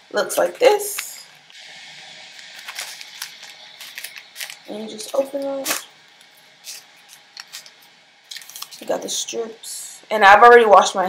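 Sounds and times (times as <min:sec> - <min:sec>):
room hiss: 0:00.0 - 0:11.0.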